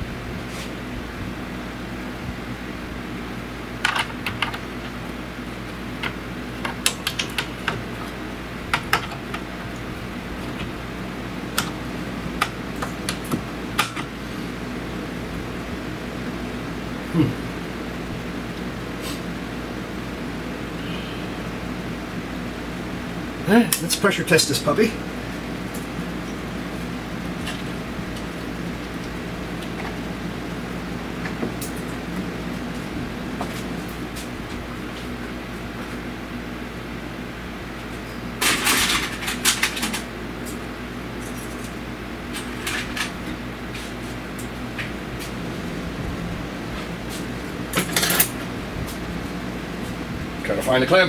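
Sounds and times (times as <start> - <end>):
ventilation fan hum: 0.0 - 51.0.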